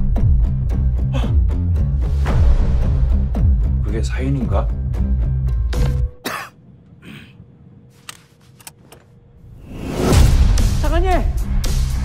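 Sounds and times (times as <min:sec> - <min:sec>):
short harsh cough: 0:06.2 - 0:07.3
dramatic trailer music drone: 0:09.4 - 0:12.0.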